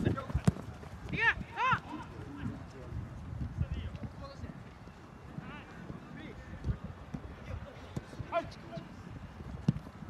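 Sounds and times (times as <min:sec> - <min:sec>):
ball being kicked: 0:00.1 - 0:00.7, 0:09.6 - 0:09.9
players shouting: 0:01.1 - 0:02.4.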